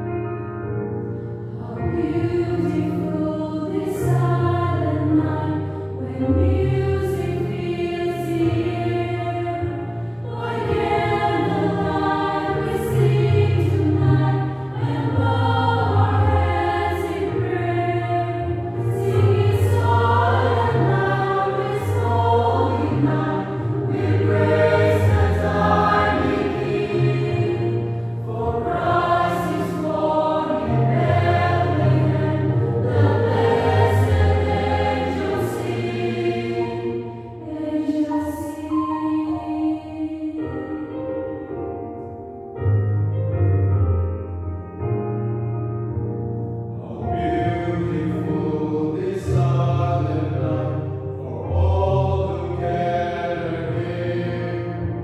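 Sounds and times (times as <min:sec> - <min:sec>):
mixed choir singing: 0:01.4 - 0:40.8, 0:46.7 - 0:55.0.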